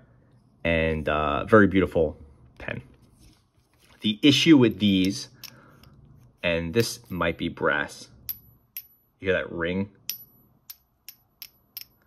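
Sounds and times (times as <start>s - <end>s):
pen barrel tapping with metal ring: 5.0s - 6.0s, 8.2s - 9.1s, 10.1s - 12.0s.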